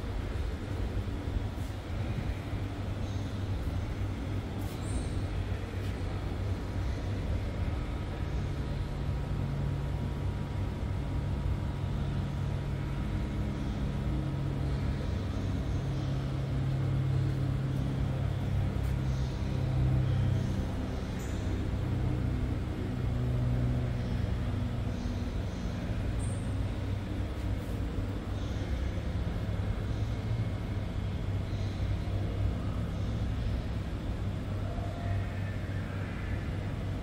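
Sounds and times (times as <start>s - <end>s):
faint hum: 0.0s - 37.0s.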